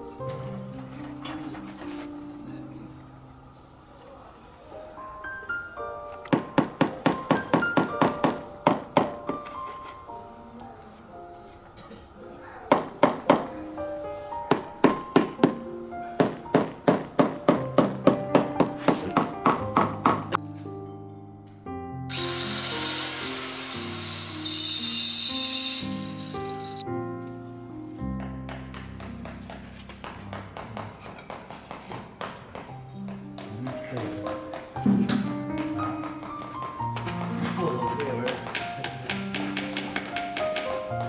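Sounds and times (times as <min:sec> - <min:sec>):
background music: 0:00.0 - 0:41.0
power tool whining: 0:22.1 - 0:26.8.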